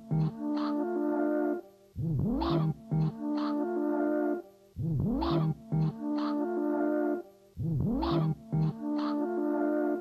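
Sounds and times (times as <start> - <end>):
synthesized music loop: 0.0 - 10.0.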